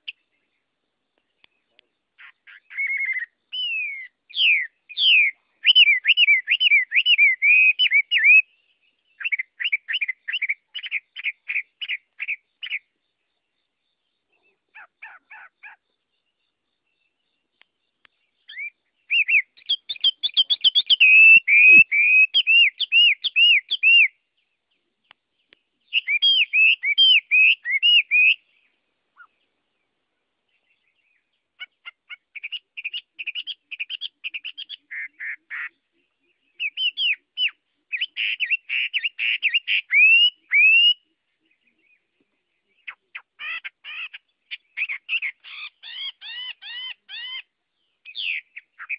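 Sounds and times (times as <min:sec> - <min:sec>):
bird singing whistled notes: 0:00.0 - 0:48.9.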